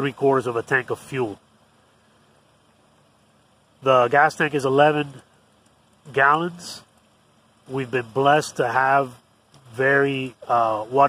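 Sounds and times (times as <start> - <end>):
man speaking: 0.0 - 1.4, 3.8 - 5.2, 6.1 - 6.8, 7.7 - 11.0
car engine idling: 0.0 - 11.0
fan blowing: 0.0 - 11.0.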